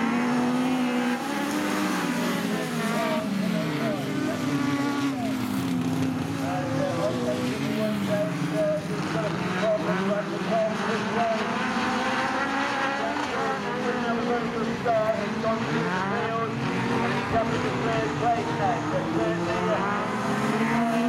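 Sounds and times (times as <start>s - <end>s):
racing car engines: 0.0s - 21.0s.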